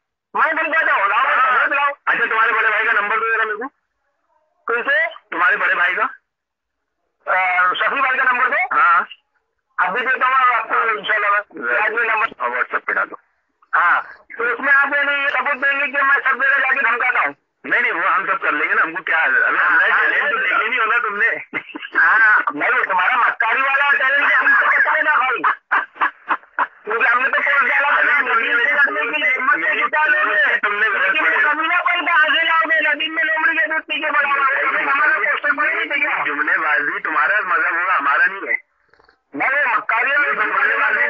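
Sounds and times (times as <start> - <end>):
telephone-like talking: 0.4 - 3.8, 4.6 - 6.3, 7.2 - 41.0.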